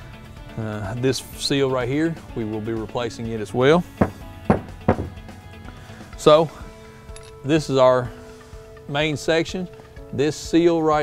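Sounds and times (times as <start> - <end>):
background music: 0.0 - 11.0
metal housing knocking on workbench: 4.0 - 5.3.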